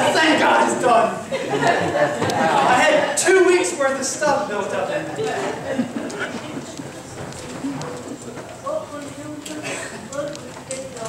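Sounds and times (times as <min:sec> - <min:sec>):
congregation low voices: 0:00.0 - 0:11.0.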